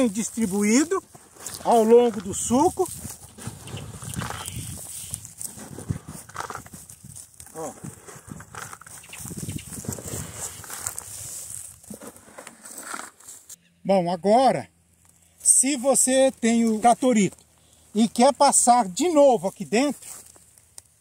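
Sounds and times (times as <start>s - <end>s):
boots crunching on straw and soil: 0.0s - 13.6s, 15.1s - 21.0s
manure rustling and pattering: 0.0s - 13.6s, 15.0s - 21.0s.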